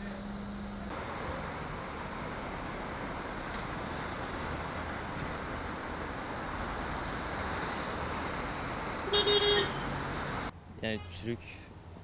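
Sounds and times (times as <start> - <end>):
street traffic noise: 0.0 - 12.0
car horn honking: 9.1 - 10.0.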